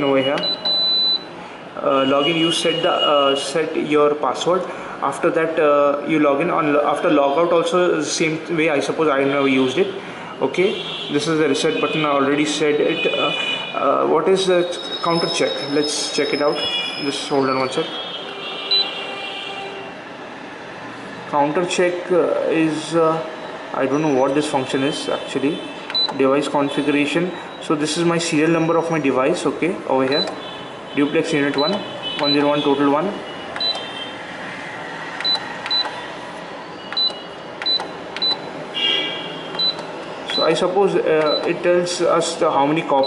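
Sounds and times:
steady background noise: 0.0s - 43.0s
short high beep: 18.7s - 19.0s
short high beeps: 18.7s - 19.0s, 36.8s - 38.5s, 41.3s - 41.5s.

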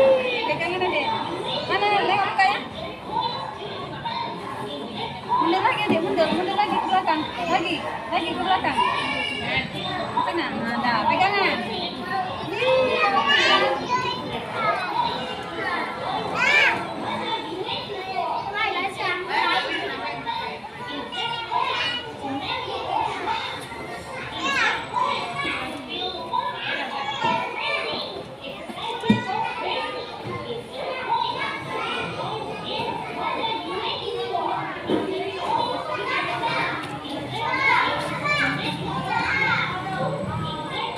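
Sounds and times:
adults talking: 0.0s - 40.9s
children playing and chattering: 0.0s - 40.9s.

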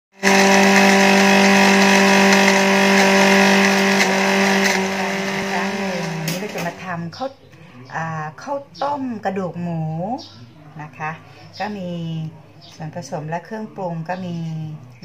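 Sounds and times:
blender clicks: 0.2s - 6.8s
blender motor grinding: 0.2s - 6.8s.

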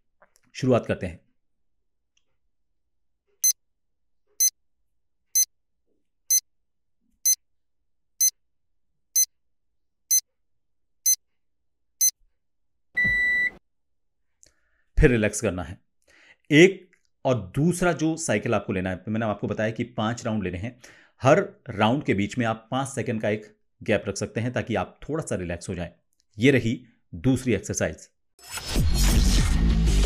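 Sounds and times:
long low beep: 13.0s - 13.5s.

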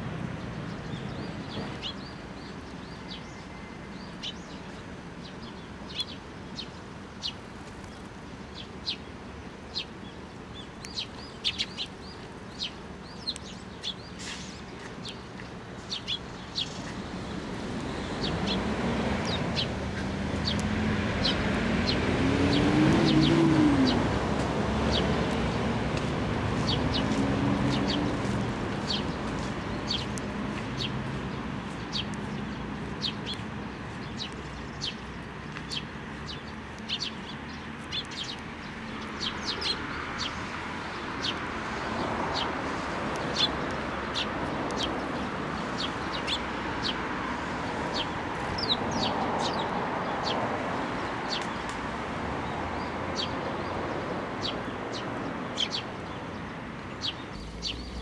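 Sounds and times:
sparrows chirping: 0.1s - 58.0s
low engine hum: 57.3s - 58.0s.

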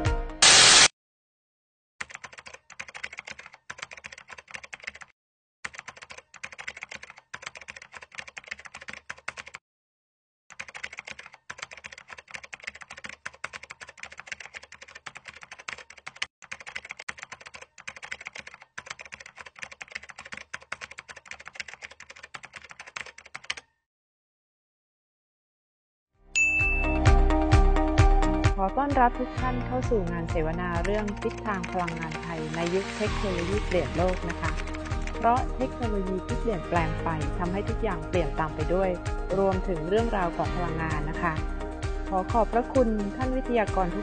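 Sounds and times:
computer keyboard typing: 2.0s - 9.6s, 10.5s - 23.8s, 30.6s - 32.8s, 33.5s - 36.6s.

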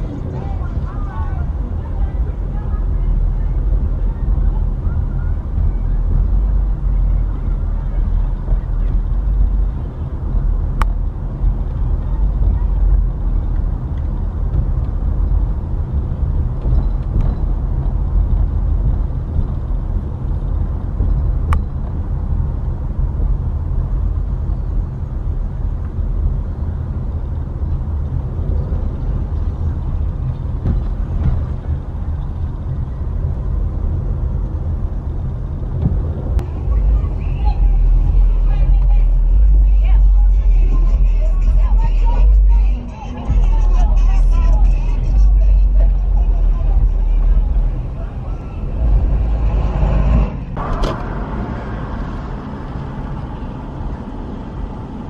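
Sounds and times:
indistinct voices: 0.0s - 21.0s, 36.2s - 53.8s
car rumble from inside cabin: 0.0s - 55.0s.

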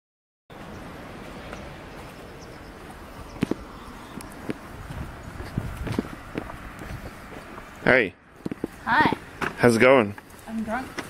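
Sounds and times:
outdoor background noise: 0.5s - 11.0s
footsteps on asphalt: 1.4s - 11.0s.

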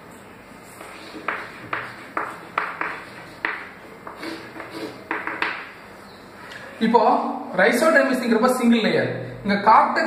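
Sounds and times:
chalk tapping and scratching on blackboard: 0.7s - 5.7s.

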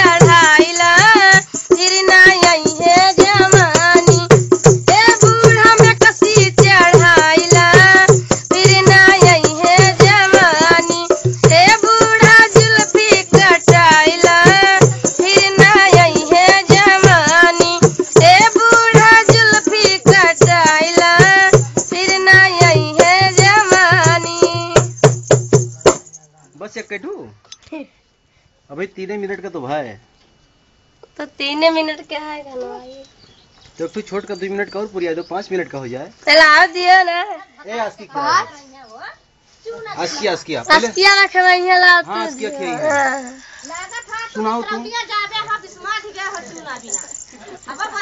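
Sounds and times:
woman singing folk song: 0.0s - 25.0s, 40.7s - 44.8s
percussion beats: 0.0s - 26.8s, 40.2s - 48.0s.

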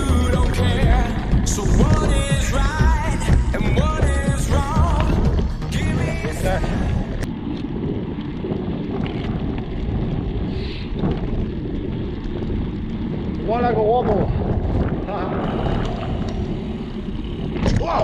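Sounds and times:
bike rattles and clicks: 0.0s - 18.0s
tyres rumbling over dirt: 0.0s - 18.0s
wind buffeting microphone: 0.0s - 18.0s.

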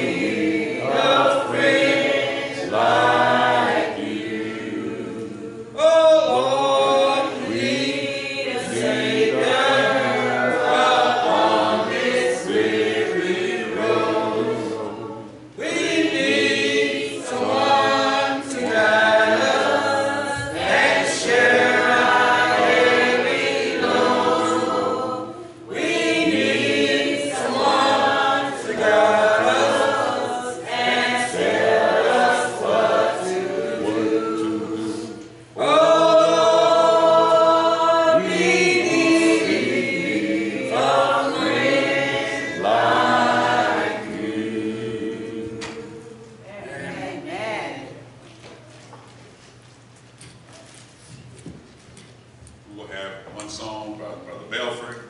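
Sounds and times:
congregation singing a hymn: 0.0s - 48.2s.

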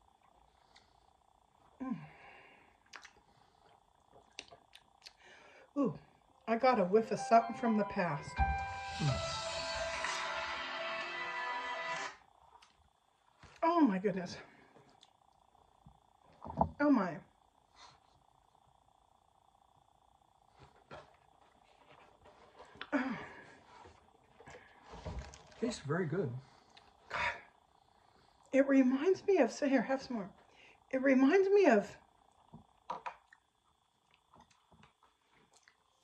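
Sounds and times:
faint steady hum: 0.0s - 36.0s
thin high whine: 6.7s - 33.3s.

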